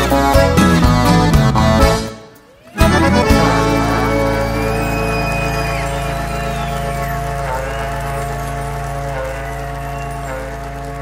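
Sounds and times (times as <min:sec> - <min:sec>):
band chord with accordion: 0:00.0 - 0:11.0
ox horn long call: 0:02.8 - 0:11.0.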